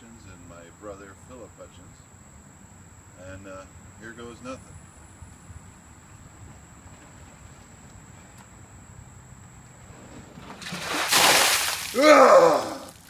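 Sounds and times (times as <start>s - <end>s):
ice water splashing on pavement: 10.6s - 13.0s.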